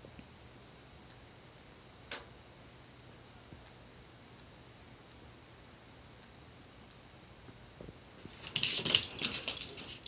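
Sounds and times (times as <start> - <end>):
dog and kitten scuffling: 8.2 - 10.0
claws scrabbling on wooden floor: 8.3 - 10.0.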